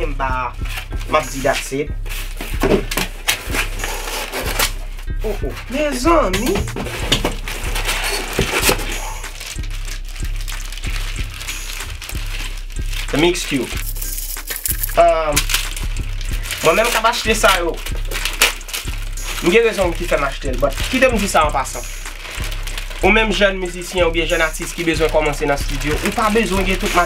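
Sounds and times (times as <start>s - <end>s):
cardboard rustling and scraping: 1.4s - 5.4s, 6.4s - 9.6s
plastic bag crinkling: 6.6s - 23.0s, 23.8s - 27.0s.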